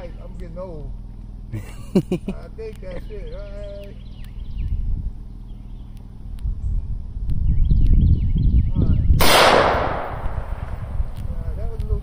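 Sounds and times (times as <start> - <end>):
rifle shot with echo: 9.2 - 11.2.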